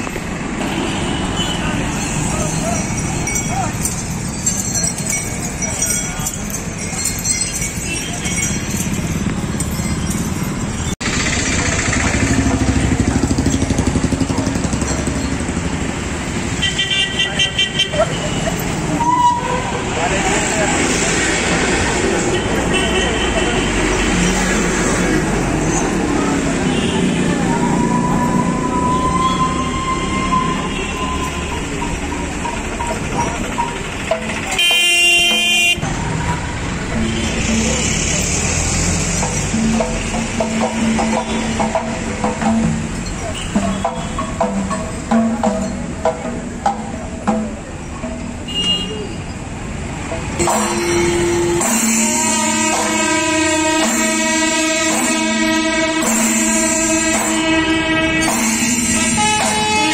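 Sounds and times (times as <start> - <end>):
motorbikes and cars passing: 0.0 - 54.0
vehicle horn honks: 34.6 - 35.8, 48.5 - 49.1, 50.4 - 59.9.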